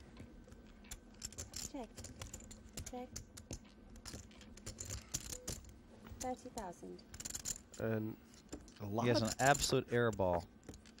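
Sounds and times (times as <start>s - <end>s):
clay poker chips clicking: 0.4s - 11.0s.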